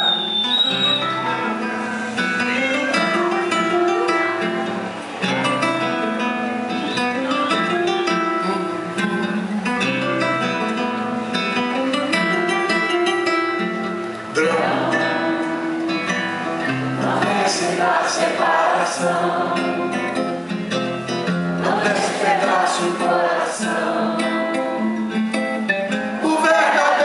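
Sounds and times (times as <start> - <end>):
acoustic guitars playing: 0.0 - 27.0.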